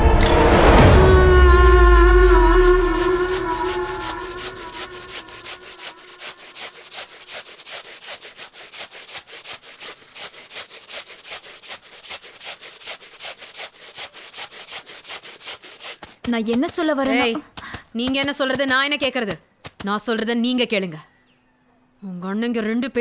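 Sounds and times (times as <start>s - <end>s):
plastic brush scrubbing wet cloth: 1.6s - 20.2s.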